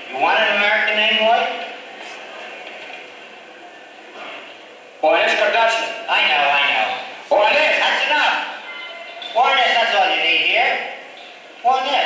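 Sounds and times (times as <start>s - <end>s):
man speaking over loudspeakers: 0.0s - 1.8s, 5.0s - 12.0s.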